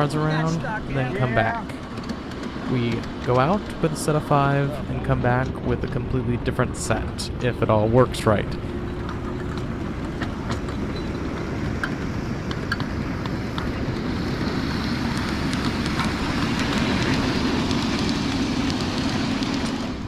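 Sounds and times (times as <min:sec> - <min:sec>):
miniature train rolling past: 0:00.0 - 0:20.0
wheels clicking on rails: 0:00.0 - 0:20.0.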